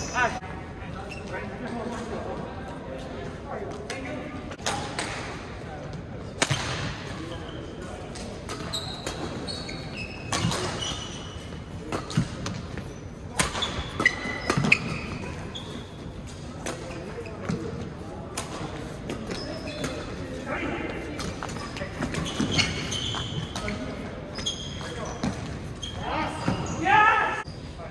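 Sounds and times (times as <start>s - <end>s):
shoes squeaking on court: 0.0s - 2.3s, 7.1s - 27.9s.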